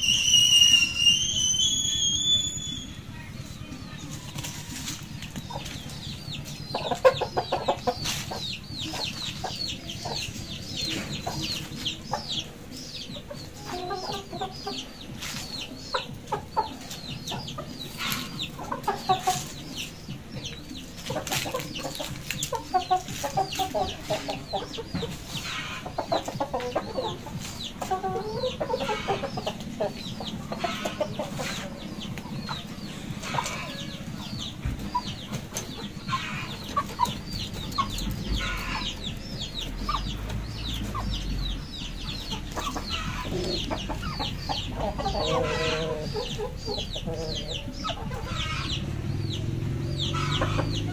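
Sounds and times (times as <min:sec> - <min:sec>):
high falling chirps: 0:00.0 - 0:03.2
chickens clucking: 0:00.0 - 0:50.9.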